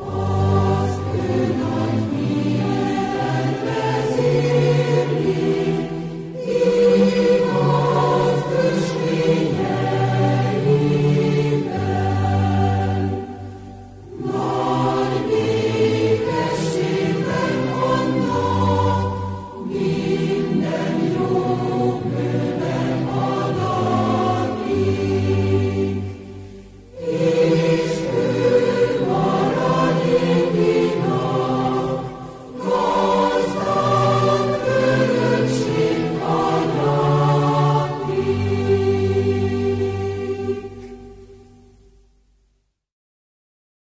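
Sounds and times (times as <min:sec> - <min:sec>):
choir singing: 0:00.0 - 0:42.0.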